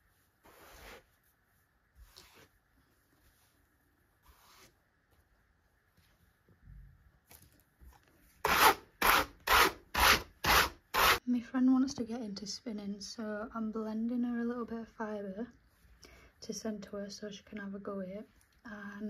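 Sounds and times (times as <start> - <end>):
brush strokes on carding cloth: 0.0 - 4.8.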